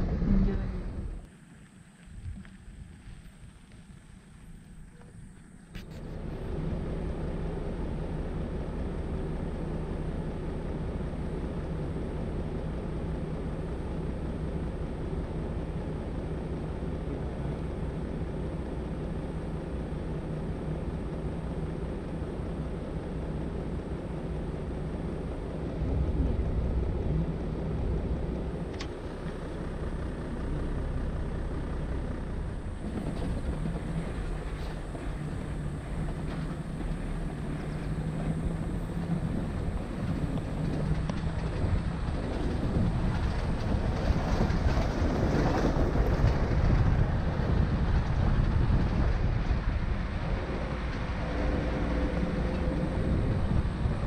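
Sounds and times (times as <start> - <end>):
vehicle driving on dirt track: 0.0 - 54.0
vehicle engine humming: 0.0 - 54.0.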